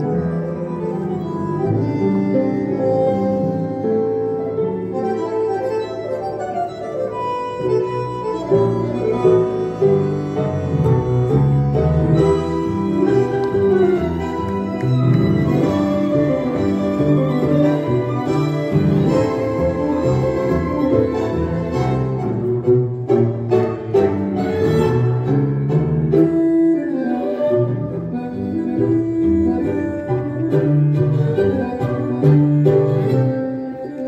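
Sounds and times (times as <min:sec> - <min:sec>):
tango music with violins: 0:00.0 - 0:34.0.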